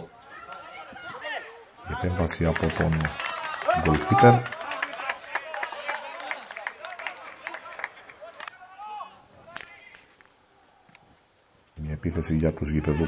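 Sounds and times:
distant shouting voices: 0.0s - 11.2s, 12.6s - 13.0s.

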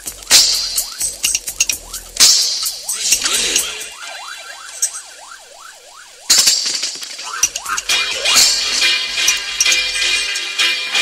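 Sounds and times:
dub reggae music: 0.0s - 5.1s, 7.2s - 11.0s
dub siren wailing: 1.8s - 6.3s, 7.1s - 9.6s.

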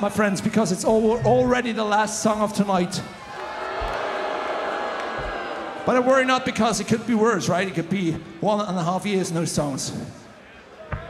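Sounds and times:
crowd calling out and cheering: 0.0s - 11.0s.

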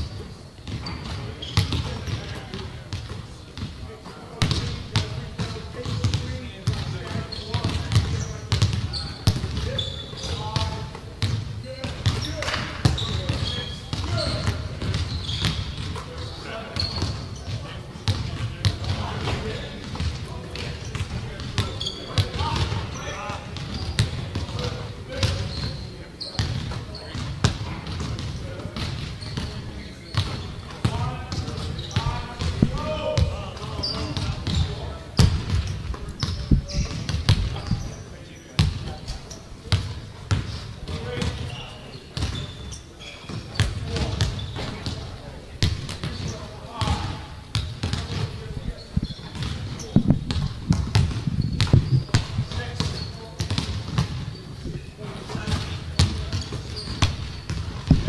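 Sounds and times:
basketballs bouncing on wooden floor: 0.0s - 3.7s, 4.4s - 25.8s, 26.4s - 38.0s, 38.6s - 42.6s, 43.2s - 54.4s, 55.3s - 58.0s
voices talking: 0.8s - 58.0s.

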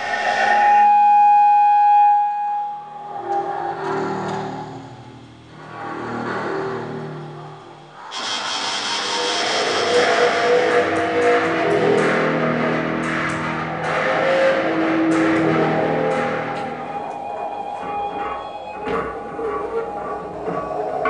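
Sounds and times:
harsh noise wash: 0.0s - 21.0s
bowed metal drones: 2.9s - 21.0s.

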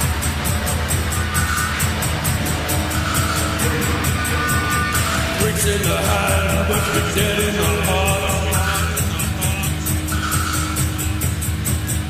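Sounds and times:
bass: 0.0s - 12.0s
drums keeping steady beat: 0.0s - 12.0s
held guitar tone: 0.0s - 12.0s.

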